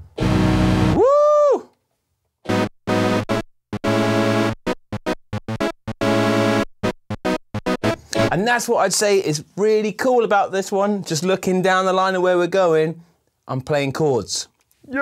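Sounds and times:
synthesizer notes: 0:00.0 - 0:01.0, 0:02.5 - 0:08.5.

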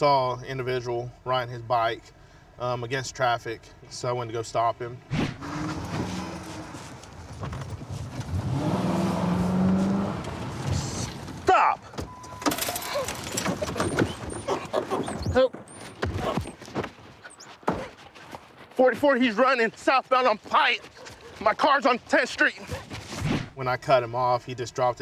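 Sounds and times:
car engine running: 0:05.4 - 0:11.5.

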